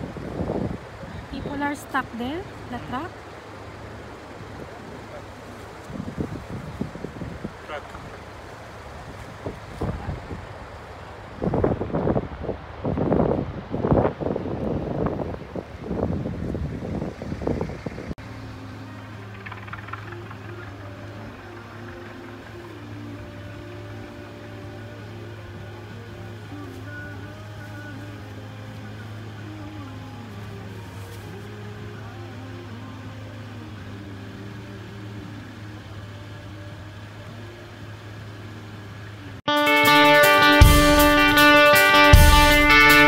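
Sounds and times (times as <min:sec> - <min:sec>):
people talking: 0:01.0 - 0:03.2, 0:04.6 - 0:06.0, 0:07.6 - 0:08.3, 0:09.8 - 0:10.4
background music with held notes: 0:18.2 - 0:43.0.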